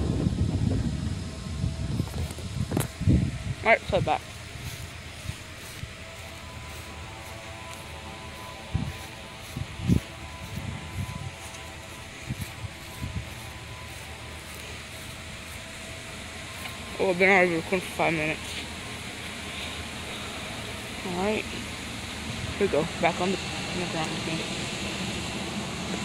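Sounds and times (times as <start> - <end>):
faint hum of steady tones: 0.0 - 26.0
outdoor background hiss: 0.0 - 26.0.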